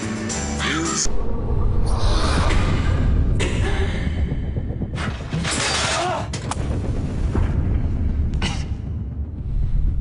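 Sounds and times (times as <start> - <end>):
deep steady rumble: 1.1 - 5.4, 6.6 - 10.0.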